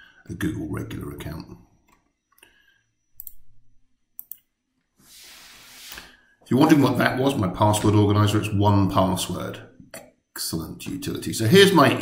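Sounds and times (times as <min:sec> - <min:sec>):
computer mouse clicks: 0:03.2 - 0:03.5, 0:04.2 - 0:04.5.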